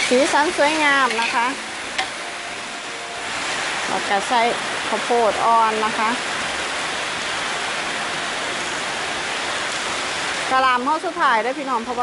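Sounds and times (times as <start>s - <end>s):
spatula tapping wok: 0.0s - 2.2s
food sizzling in wok: 0.0s - 12.0s.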